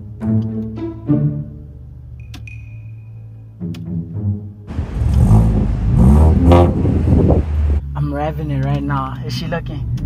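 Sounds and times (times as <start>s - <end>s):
background music: 0.0s - 6.7s
car engine revving: 4.7s - 8.8s.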